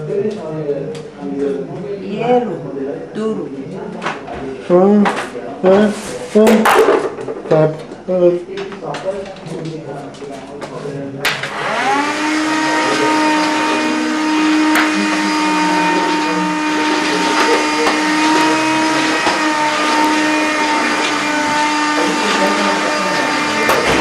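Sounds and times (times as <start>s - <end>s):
electric motor whine: 11.4s - 24.0s.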